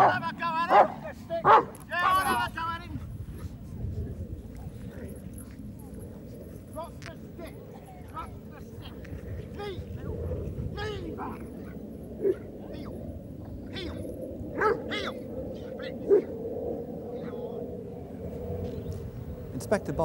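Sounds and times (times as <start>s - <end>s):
dog barking sharply: 0.7s - 1.7s.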